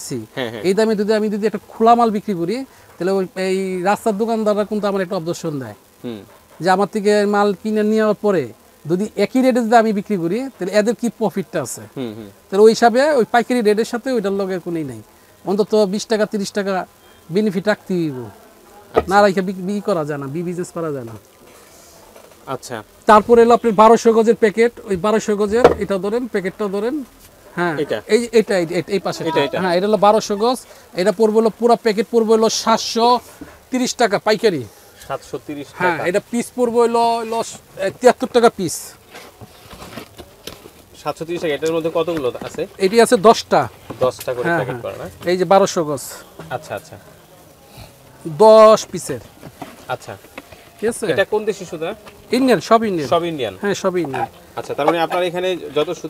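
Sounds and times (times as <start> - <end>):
man speaking: 0.0 - 21.2, 22.5 - 39.0, 41.0 - 47.0, 48.2 - 49.3, 50.8 - 56.0
man's wordless vocal sound: 12.0 - 12.4.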